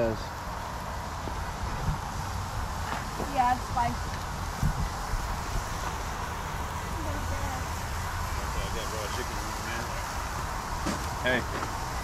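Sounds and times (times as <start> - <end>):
outdoor rumble and hiss: 0.0 - 12.0
faint voices talking: 3.2 - 12.0.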